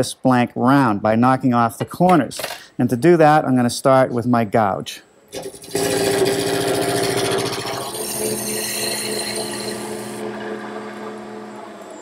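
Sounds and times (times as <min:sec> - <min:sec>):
lathe humming: 0:06.1 - 0:12.0.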